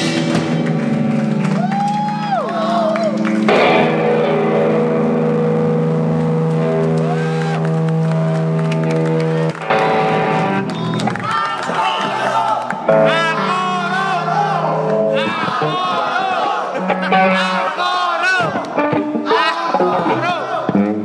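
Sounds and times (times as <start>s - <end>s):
crowd whooping: 1.0s - 4.0s, 6.6s - 20.8s
electric guitar feedback drone: 3.2s - 11.2s.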